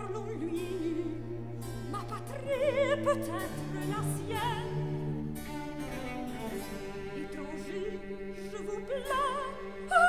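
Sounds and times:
cello and harpsichord continuo: 0.0s - 10.0s
held string chords: 0.0s - 10.0s.

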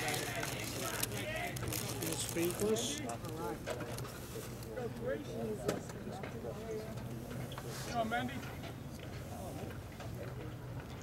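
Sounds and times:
faint chatter of spectators: 0.0s - 11.0s.

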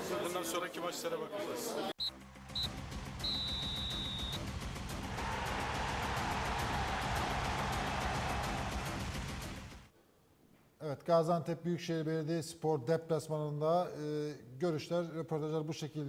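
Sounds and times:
music with fast even beat: 2.1s - 9.9s.

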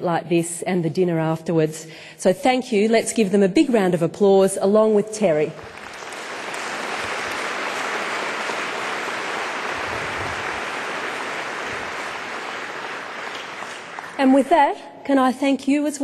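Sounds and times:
large audience applauding: 5.6s - 14.4s.

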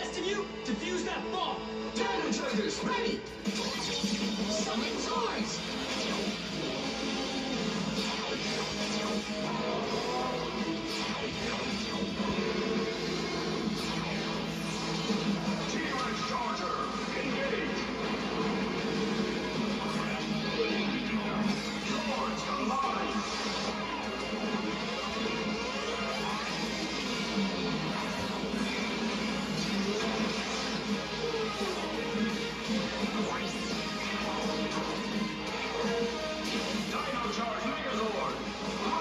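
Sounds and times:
action music on television: 0.0s - 39.0s.

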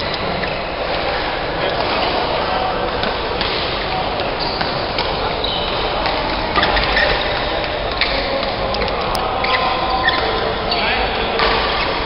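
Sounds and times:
din of badminton hall: 0.0s - 12.0s.

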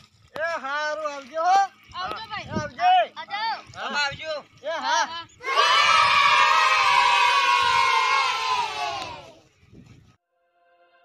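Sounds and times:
crowd shouting and cheering: 5.4s - 9.4s.

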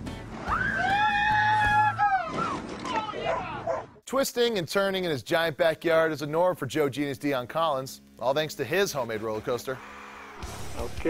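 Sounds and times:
background music: 0.0s - 2.1s, 4.7s - 11.0s.

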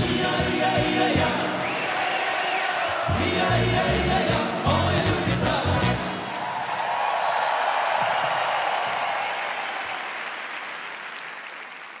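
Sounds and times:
arena audience applauding: 1.3s - 3.6s, 5.8s - 12.0s.

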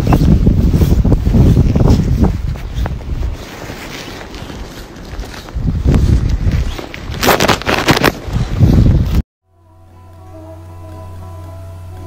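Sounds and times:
footsteps in snow: 0.0s - 9.2s
wind buffeting microphone: 0.0s - 9.2s.

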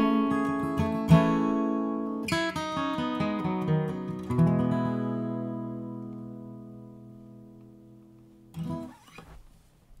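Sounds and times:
acoustic guitar chord ringing: 0.0s - 9.1s
guitar handling noise: 7.6s - 10.0s.

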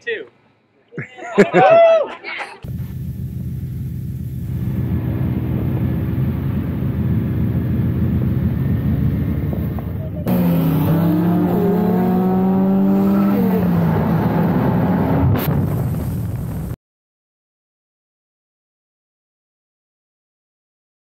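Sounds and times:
car engine pulling hard: 2.6s - 16.6s
rally car engines running: 2.6s - 16.7s.

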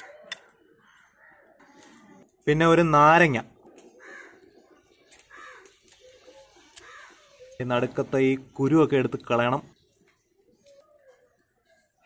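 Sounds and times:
faint bird cawing: 0.0s - 2.4s, 3.9s - 7.6s.

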